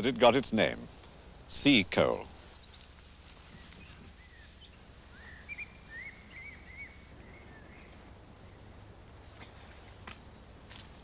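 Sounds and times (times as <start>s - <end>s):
low steady hum: 0.0s - 11.0s
faint bird chirps: 2.4s - 10.6s.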